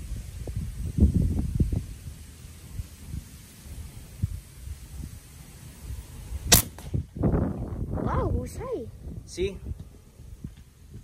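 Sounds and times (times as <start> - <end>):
wind rumbling on microphone: 0.0 - 11.0
air rifle shot: 6.5 - 7.1.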